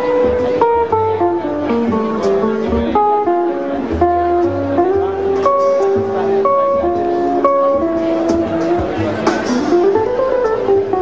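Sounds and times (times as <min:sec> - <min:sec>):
bass line: 0:00.0 - 0:11.0
electric guitar chords: 0:00.0 - 0:11.0.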